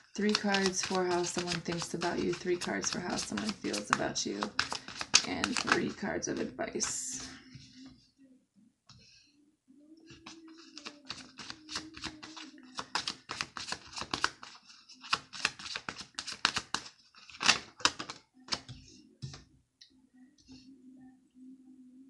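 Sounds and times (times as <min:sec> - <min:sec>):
cards being shuffled: 0:00.1 - 0:07.3, 0:10.1 - 0:18.8.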